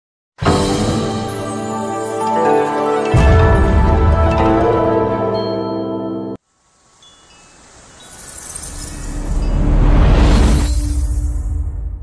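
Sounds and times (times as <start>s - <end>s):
opening music: 0.4s - 6.4s.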